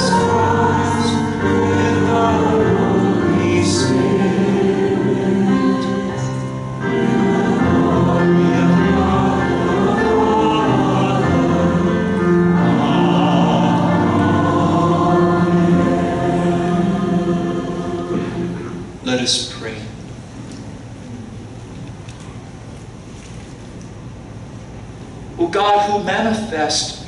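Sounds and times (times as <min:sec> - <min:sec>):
choir singing long held notes: 0:00.0 - 0:19.0.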